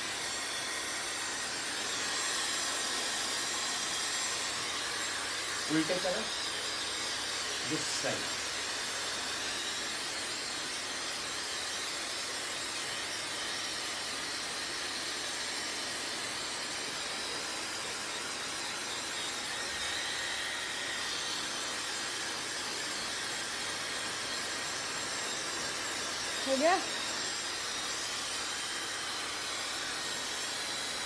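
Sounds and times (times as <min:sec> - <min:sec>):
hair dryer running: 0:00.0 - 0:31.0.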